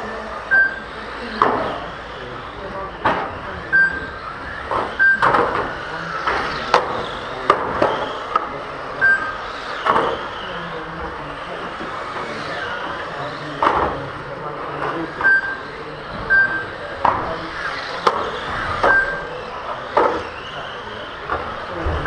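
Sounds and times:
rc car motor whine: 0.0 - 22.0
short timer beeps: 0.5 - 0.8, 18.9 - 19.3
cars knocking barriers: 4.5 - 10.6, 16.9 - 20.6.

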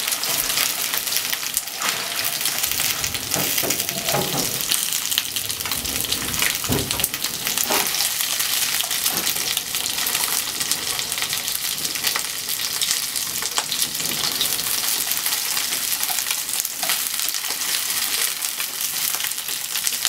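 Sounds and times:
chopsticks stirring in a pan: 0.0 - 19.1
chicken sizzling in hot oil: 0.0 - 20.0.

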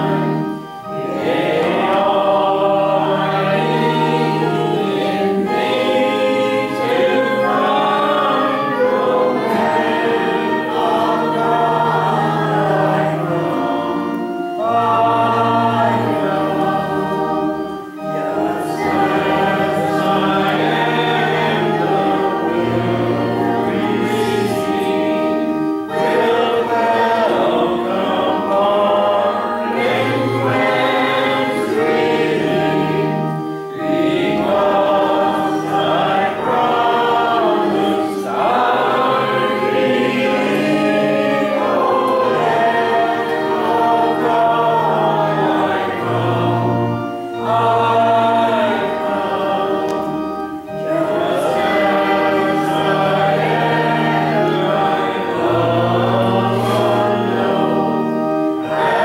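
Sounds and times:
accompaniment holding low notes: 0.0 - 59.0
congregation singing a hymn: 0.0 - 59.0.

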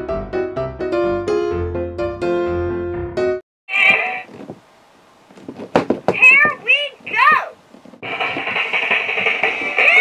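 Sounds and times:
high-pitched doll voice: 6.2 - 7.6.

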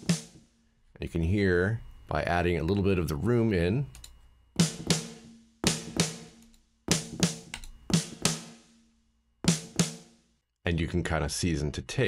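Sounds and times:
drum kit hits with reverb: 4.6 - 8.7, 9.5 - 10.1.

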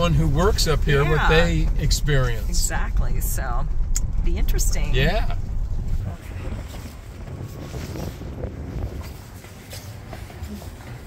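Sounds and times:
wind buffeting microphone: 2.9 - 11.0.

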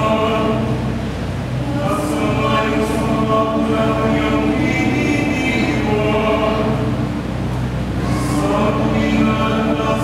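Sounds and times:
mixed choir singing in harmony: 0.0 - 0.9, 1.6 - 7.1, 8.0 - 10.0.

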